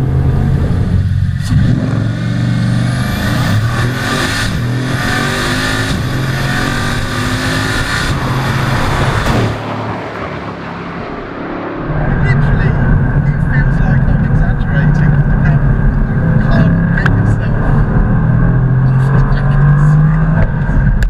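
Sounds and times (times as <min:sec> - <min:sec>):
car engine accelerating hard: 0:00.0 - 0:21.0.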